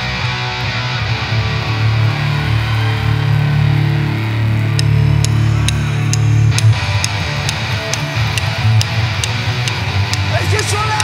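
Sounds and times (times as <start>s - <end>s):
bass guitar: 0.0s - 11.0s
electric guitar riff: 0.0s - 11.0s.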